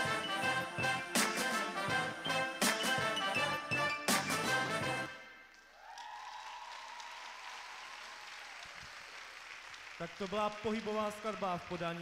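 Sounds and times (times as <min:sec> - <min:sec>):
audience applause: 0:05.8 - 0:12.0.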